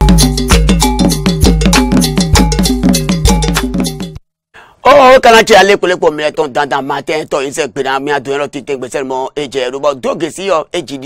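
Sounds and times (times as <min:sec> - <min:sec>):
fast percussive jingle music: 0:00.0 - 0:04.2.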